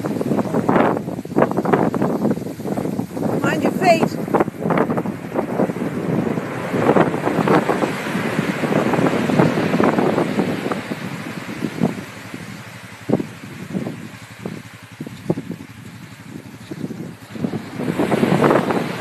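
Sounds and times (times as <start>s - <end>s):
surf breaking: 0.0s - 14.7s, 17.2s - 19.0s
wind buffeting microphone: 0.0s - 19.0s.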